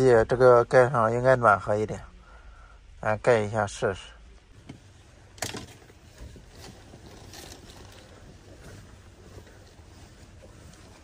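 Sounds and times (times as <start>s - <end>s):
cotton quilt rustling: 5.8s - 11.0s.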